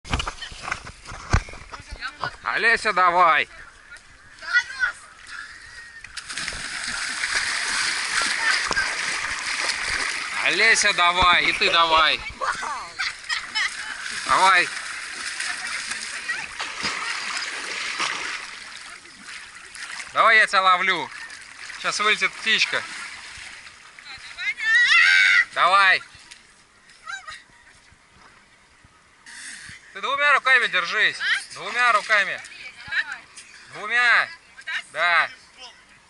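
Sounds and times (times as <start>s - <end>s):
handheld camera knocks and rustles: 0.0s - 2.0s
water splashing: 3.6s - 26.6s, 30.7s - 33.3s.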